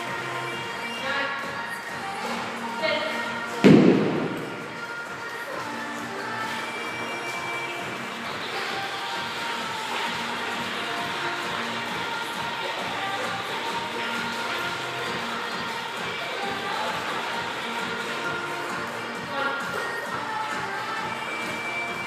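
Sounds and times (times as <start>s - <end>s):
background music: 0.0s - 22.0s
kettlebell thud on rubber floor: 3.6s - 4.5s.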